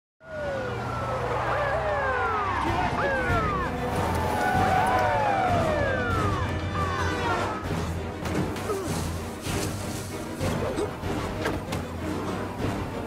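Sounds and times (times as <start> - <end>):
police sirens wailing: 0.2 - 8.2.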